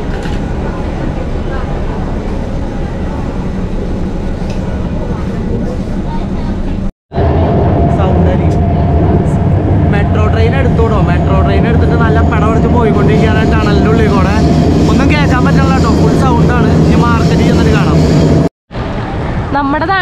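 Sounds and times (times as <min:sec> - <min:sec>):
steady whine: 0:00.0 - 0:19.9
train carriage rumble: 0:00.0 - 0:20.0
man talking: 0:09.9 - 0:18.0.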